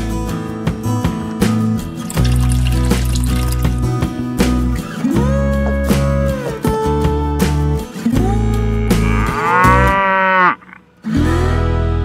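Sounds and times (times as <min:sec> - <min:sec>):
background guitar music: 0:00.0 - 0:12.0
cow mooing: 0:08.6 - 0:10.8.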